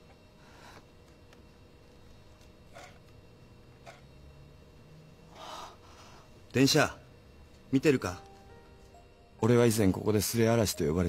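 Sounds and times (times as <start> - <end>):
breathy intake of breath: 5.3 - 6.4.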